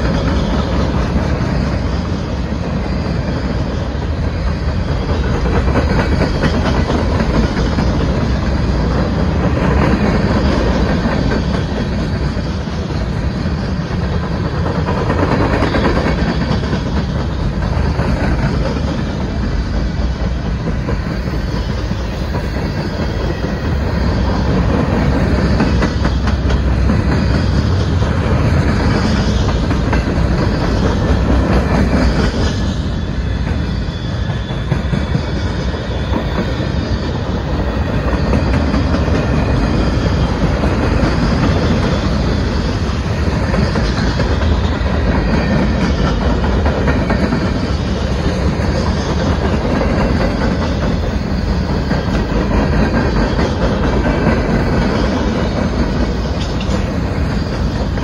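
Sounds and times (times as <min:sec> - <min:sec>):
freight train wheels rumbling: 0:00.0 - 0:58.0
wheels clickety-clack on rail joints: 0:00.0 - 0:58.0.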